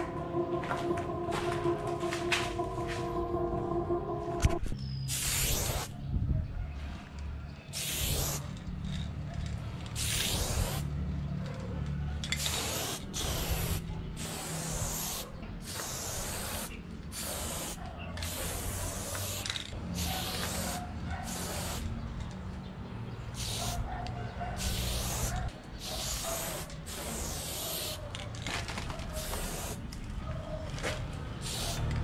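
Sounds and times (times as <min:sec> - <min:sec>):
steady low hum: 0:00.0 - 0:04.8
spray paint can hissing: 0:05.1 - 0:05.9, 0:07.8 - 0:08.6, 0:09.9 - 0:10.9, 0:12.2 - 0:21.9, 0:23.3 - 0:23.8, 0:24.6 - 0:28.0, 0:29.1 - 0:29.9, 0:31.4 - 0:32.0.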